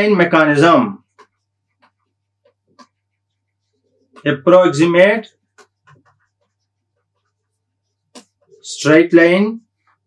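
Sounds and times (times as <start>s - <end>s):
stylus tapping on pen tablet: 1.0s - 4.2s, 5.3s - 8.5s.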